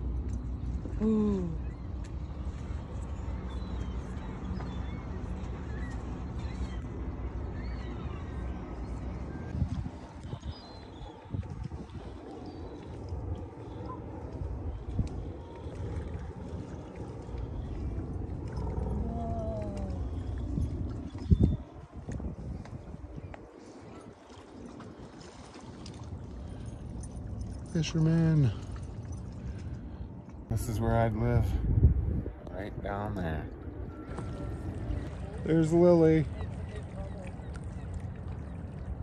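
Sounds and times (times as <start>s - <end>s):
wind rumbling on microphone: 0.0s - 39.0s
water lapping against rocks: 9.5s - 30.5s.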